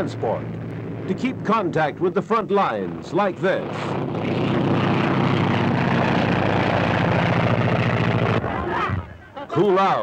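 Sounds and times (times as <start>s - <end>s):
propeller plane engine droning: 0.0s - 9.1s.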